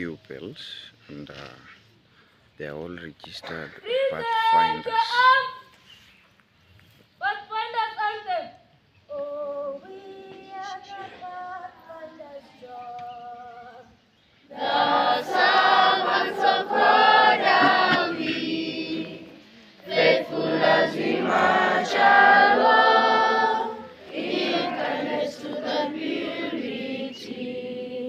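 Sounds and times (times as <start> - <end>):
children singing unaccompanied: 9.1 - 28.0.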